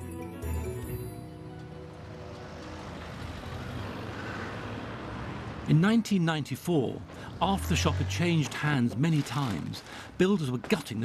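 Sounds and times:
street traffic road noise: 0:00.1 - 0:11.0
lorry engine running: 0:00.4 - 0:05.8.

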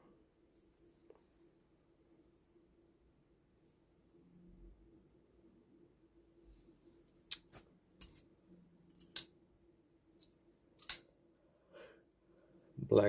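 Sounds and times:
folding knife metallic clicks: 0:10.8 - 0:11.0.

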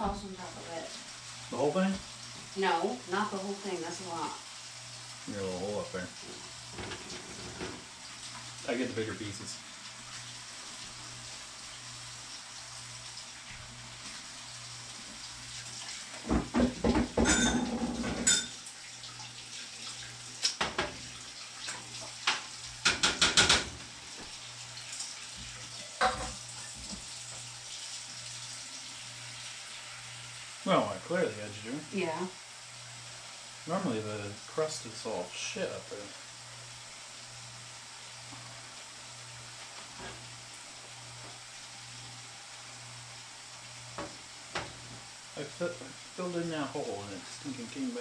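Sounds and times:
low hum and hiss: 0:00.0 - 0:48.0.

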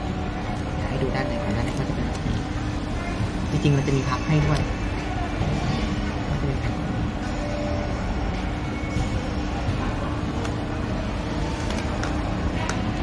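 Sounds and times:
hum and murmur of a store: 0:00.0 - 0:13.0.

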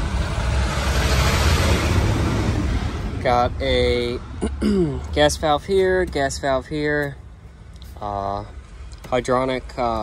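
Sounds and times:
traffic rushing past: 0:00.0 - 0:10.0.

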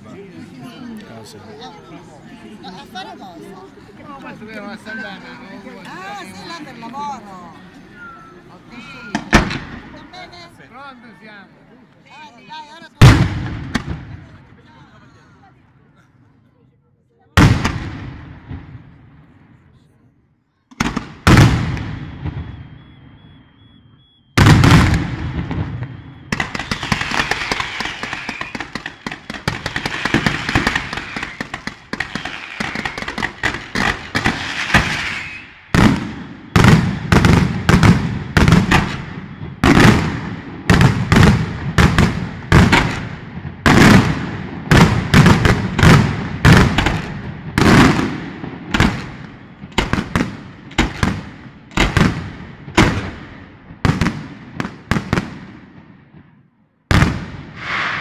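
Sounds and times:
fireworks bangs echoing: 0:09.0 - 0:10.6, 0:13.0 - 0:14.8, 0:17.4 - 0:19.6, 0:20.7 - 0:58.0
fireworks crackling: 0:12.5 - 0:15.0, 0:24.4 - 0:55.6, 0:56.9 - 0:58.0.

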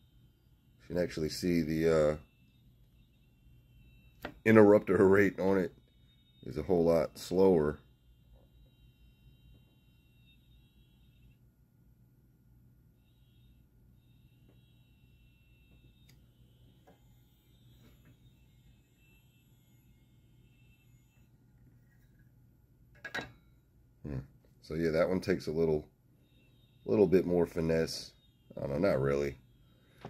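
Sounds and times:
high electrical whine: 0:00.0 - 0:12.0, 0:12.7 - 0:23.4, 0:24.0 - 0:30.0
low steady hum: 0:00.0 - 0:30.0.

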